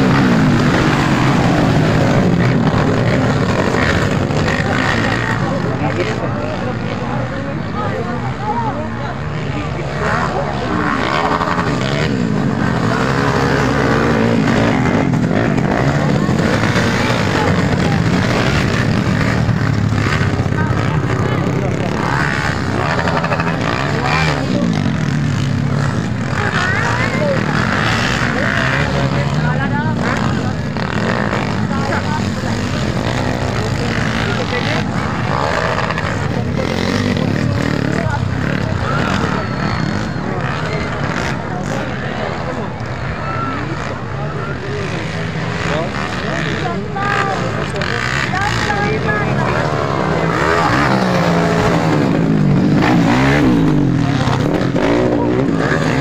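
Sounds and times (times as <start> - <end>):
motorbike engines revving: 0.0 - 56.0
spectators' voices: 0.0 - 56.0.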